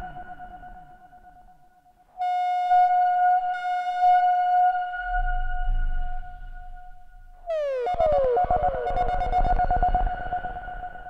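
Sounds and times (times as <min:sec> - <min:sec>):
high-pitched synthesizer tone: 0:07.5 - 0:10.2
synthesizer drone with low sweeps: 0:07.5 - 0:11.0.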